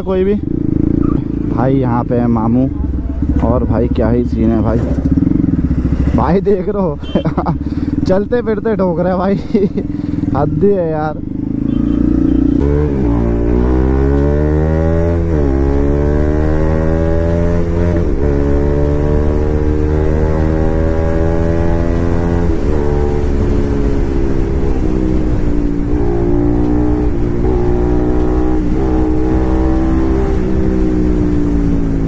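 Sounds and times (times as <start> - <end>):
motorcycle engine accelerating: 0.0 - 32.0.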